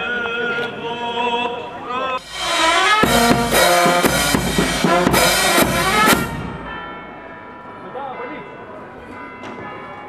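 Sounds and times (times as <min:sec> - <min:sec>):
bass drum and cymbal hit: 0:02.2 - 0:06.9
church bells ringing: 0:02.2 - 0:10.0.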